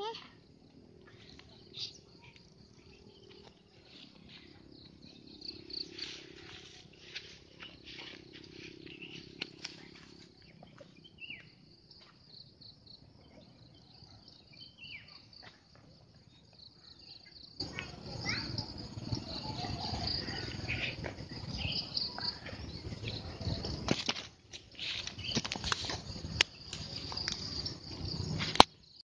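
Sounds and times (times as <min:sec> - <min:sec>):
high insect drone: 0:00.0 - 0:10.4
birds calling: 0:00.9 - 0:11.7, 0:16.9 - 0:24.0.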